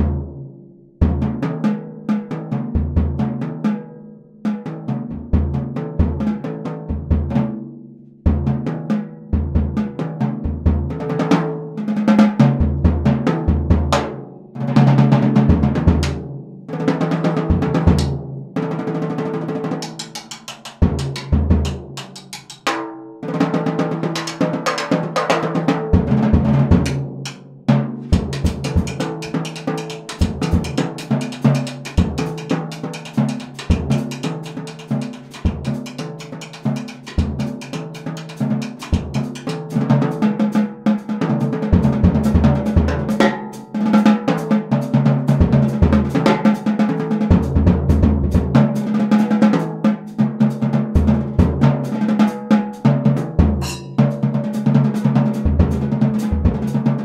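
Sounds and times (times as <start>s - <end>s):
snare and tom drum strokes: 0.0s - 0.4s, 4.5s - 57.0s.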